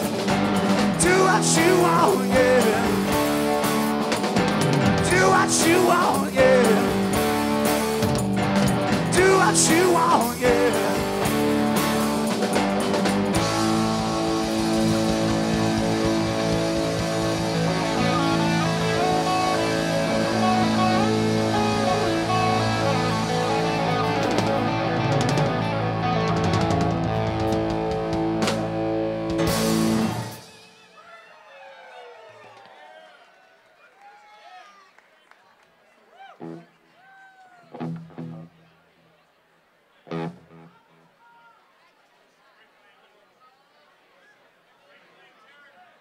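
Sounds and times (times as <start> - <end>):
drum and cymbal hits: 0.0 - 22.1, 26.5 - 31.0
rock band playing: 0.0 - 31.1, 37.8 - 38.5, 40.1 - 40.7
crowd voices and cheering: 0.0 - 46.0.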